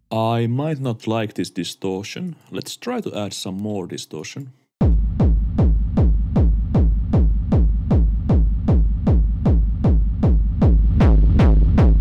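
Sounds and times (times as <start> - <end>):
distorted electronic kick drum: 4.8 - 12.0.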